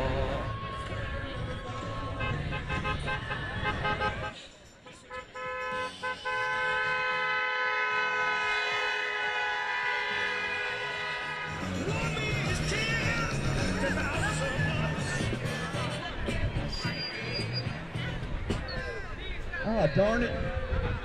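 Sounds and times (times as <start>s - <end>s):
crowd voices: 0.0s - 21.0s
vehicle horn honking: 2.1s - 4.4s, 5.0s - 13.0s.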